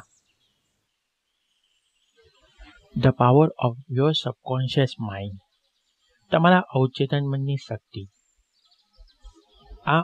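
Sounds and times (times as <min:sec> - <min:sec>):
narrator speaking: 0:03.0 - 0:05.4, 0:06.3 - 0:08.1.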